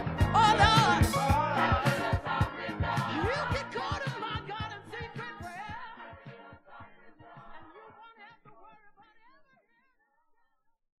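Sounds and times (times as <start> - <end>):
gospel choir singing: 0.0 - 9.0.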